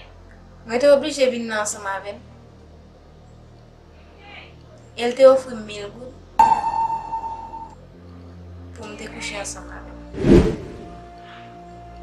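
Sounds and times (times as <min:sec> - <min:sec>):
bright chime ping: 0:06.4 - 0:07.8.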